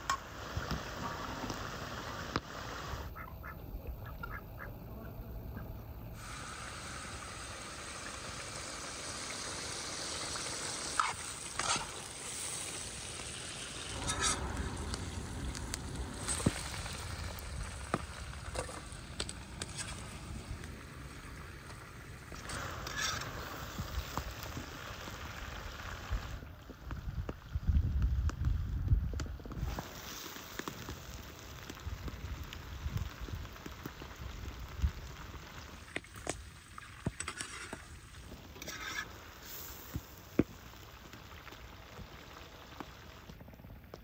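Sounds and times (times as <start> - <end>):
sharp frying pops: 0.0 - 4.4, 6.2 - 44.0
meat sizzling in a pan: 6.1 - 26.4, 29.6 - 43.4.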